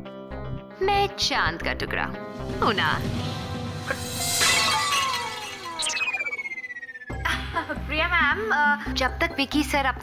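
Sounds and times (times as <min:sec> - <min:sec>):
background music: 0:00.0 - 0:10.0
glass shattering crash: 0:03.5 - 0:06.7
tones sliding down in pitch: 0:05.0 - 0:07.2.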